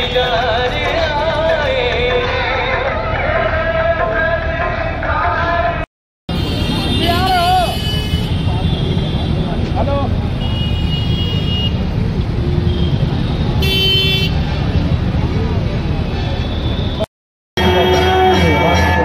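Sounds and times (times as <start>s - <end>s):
street traffic din: 0.0s - 19.0s
crowd voices: 14.5s - 17.0s.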